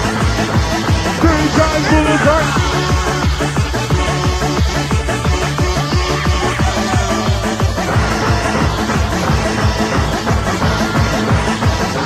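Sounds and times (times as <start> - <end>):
fast hard-dance electronic music: 0.0 - 12.0.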